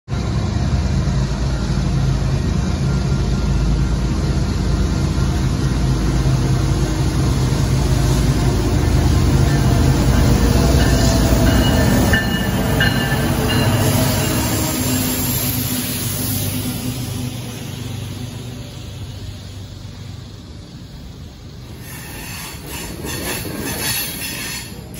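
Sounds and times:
diesel locomotive engine rumble: 0.1s - 24.9s.

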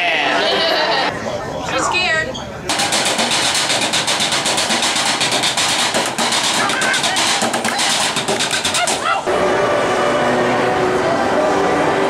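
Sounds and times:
sticks drumming on metal trash cans: 2.7s - 9.2s.

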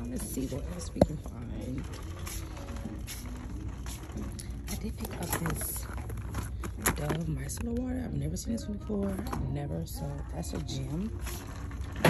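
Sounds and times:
phone and cart rustles: 0.0s - 12.0s.

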